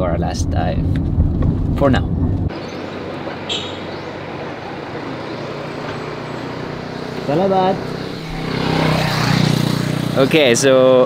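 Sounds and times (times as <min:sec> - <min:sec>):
passing traffic: 0:00.0 - 0:11.0.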